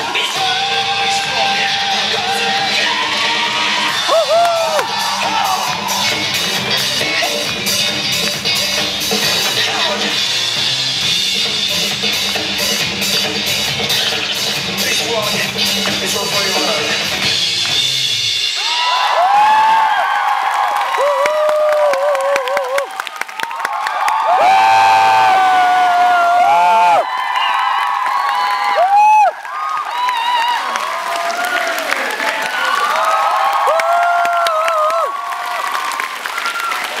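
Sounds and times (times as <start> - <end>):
crowd shouting and screaming: 0.0 - 7.5, 18.4 - 37.0
audience clapping: 4.0 - 10.0, 18.7 - 37.0.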